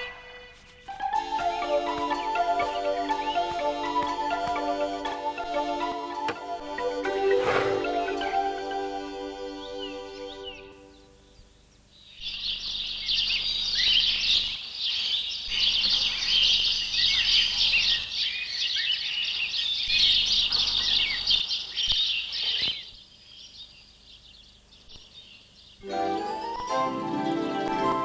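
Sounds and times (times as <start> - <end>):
songbirds chirping: 0.0 - 28.0.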